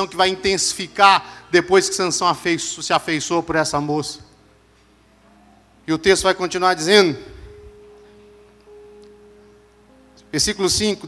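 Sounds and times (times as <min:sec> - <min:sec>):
soft steady musical tone: 0:00.0 - 0:11.0.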